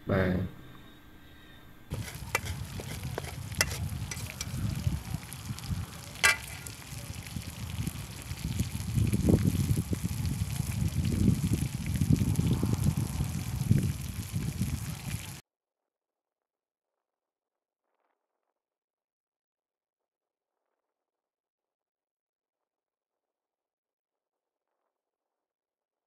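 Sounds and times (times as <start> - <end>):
wind buffeting microphone: 1.9 - 15.4.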